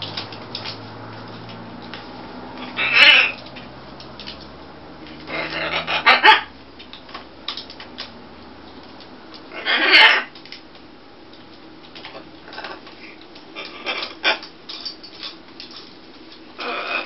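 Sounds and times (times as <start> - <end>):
macaws squawking: 2.6 - 3.5, 5.2 - 6.6, 9.5 - 10.4, 13.5 - 14.5, 16.6 - 17.0.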